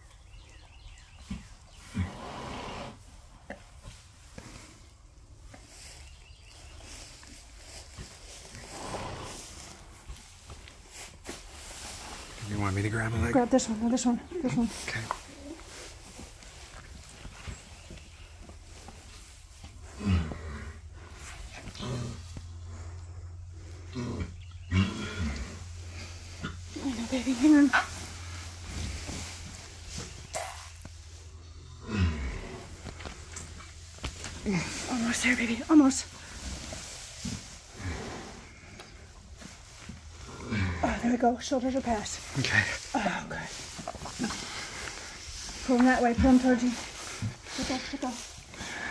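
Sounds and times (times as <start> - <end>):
horse groaning: 1.7 - 3.0, 8.5 - 9.9, 19.8 - 27.1, 31.6 - 33.6, 40.1 - 48.9
horse low grunts: 1.8 - 3.0, 19.8 - 22.5, 23.7 - 26.7, 31.6 - 33.2, 40.2 - 41.0.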